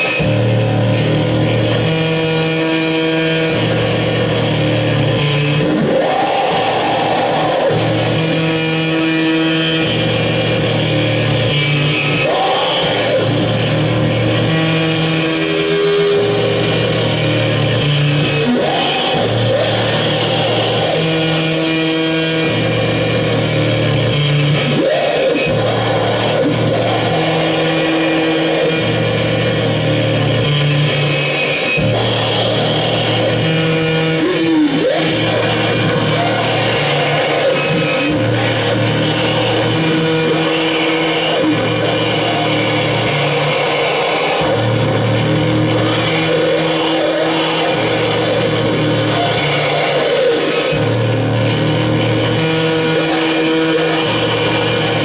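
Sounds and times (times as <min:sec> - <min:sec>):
electronic noise drone: 0:00.0 - 0:55.0
sliding pitch: 0:00.0 - 0:55.0.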